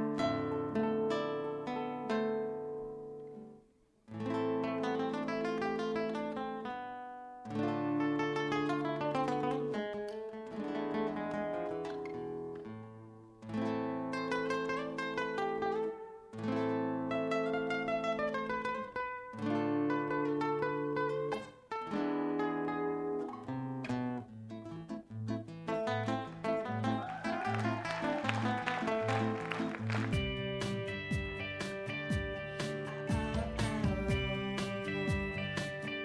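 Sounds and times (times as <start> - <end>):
fingerstyle classical guitar: 0.0 - 36.0.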